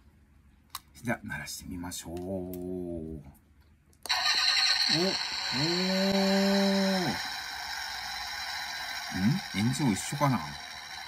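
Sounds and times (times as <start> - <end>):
recorded engine sound from speaker: 4.1 - 11.0.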